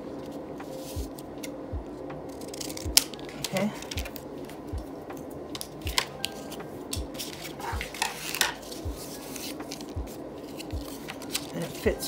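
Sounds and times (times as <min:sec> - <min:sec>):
cardboard and paper rustling: 0:05.6 - 0:12.0.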